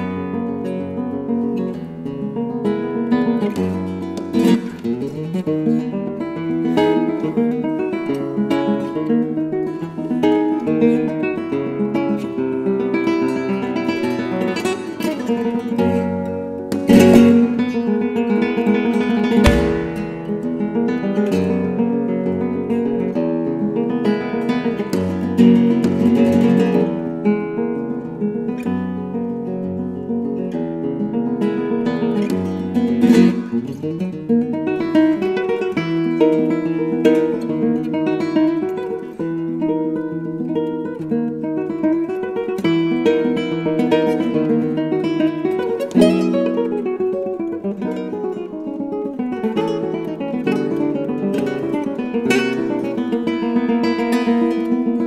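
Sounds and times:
fingerpicked nylon-string guitar: 0.0s - 55.0s
strummed guitar chords: 19.2s - 21.3s.

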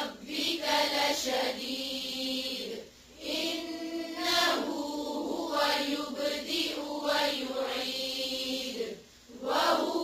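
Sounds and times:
melodic chanted recitation: 0.0s - 10.0s.

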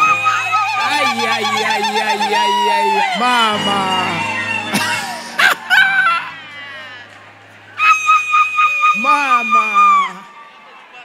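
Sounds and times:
person singing drawn-out calls: 0.0s - 5.4s
music: 0.0s - 8.9s.

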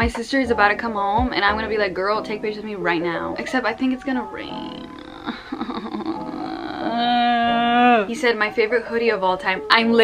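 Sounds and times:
woman whining: 4.6s - 8.2s
woman laughing: 5.1s - 7.5s.

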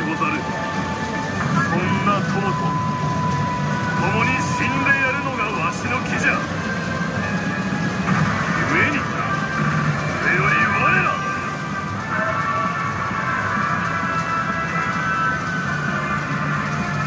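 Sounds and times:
game effects: 0.0s - 17.0s
low din of parlor: 0.0s - 17.0s
man's dramatic voice from speaker: 1.5s - 2.7s, 8.4s - 9.4s, 10.2s - 11.4s.

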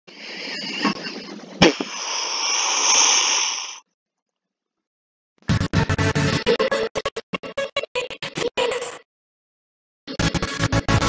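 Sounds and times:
hissy whoosh: 0.1s - 3.8s
sharp crack: 1.6s - 2.6s.

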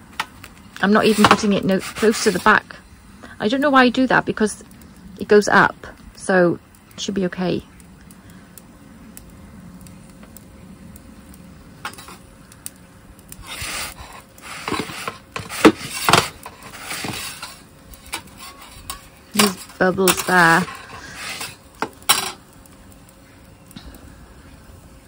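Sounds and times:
gas burner hiss: 0.0s - 25.0s
metal peel scraping stone: 0.9s - 2.6s, 11.8s - 12.2s, 13.3s - 22.4s
metal peel clanking: 14.4s - 22.4s.

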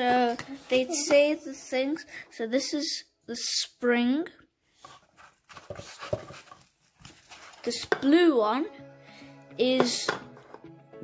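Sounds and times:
person speaking: 0.0s - 3.5s
metal tins knocking and rustling: 4.9s - 8.2s, 9.8s - 10.7s.

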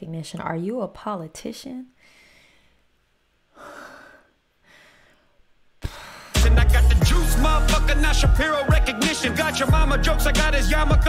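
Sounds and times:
woman gasping: 2.0s - 2.8s, 3.5s - 6.4s
soft breath: 2.0s - 2.9s, 3.5s - 6.4s.

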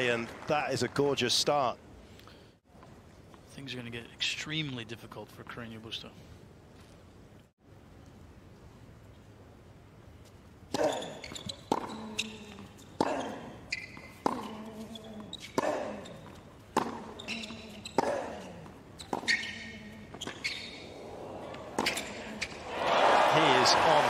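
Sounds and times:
crowd applause: 0.0s - 1.3s, 22.6s - 24.0s
tennis ball bouncing on court: 10.7s - 20.6s, 21.7s - 22.6s.

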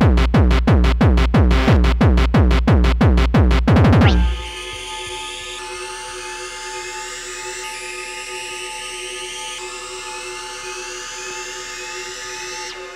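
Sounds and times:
short rising synth sweeps: 4.0s - 5.7s
synthesizer drone: 4.0s - 12.9s.

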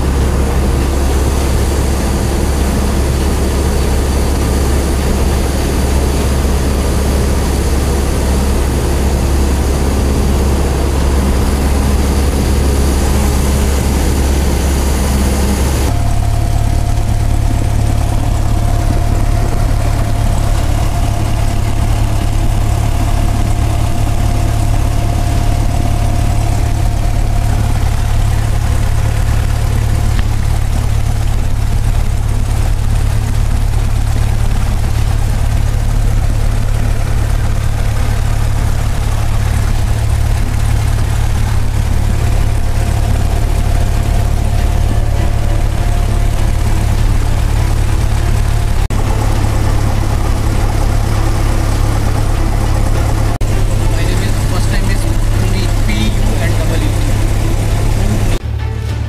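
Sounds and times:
faint steady whine: 0.0s - 58.4s
airplane engine idling: 0.0s - 59.0s.

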